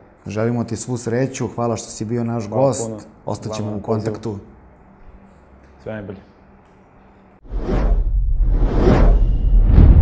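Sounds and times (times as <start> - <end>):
whooshes: 7.4 - 10.0.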